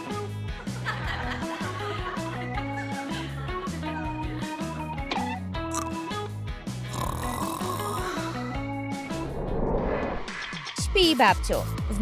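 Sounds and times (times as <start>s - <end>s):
background music: 0.0s - 12.0s
person snoring: 6.8s - 8.7s.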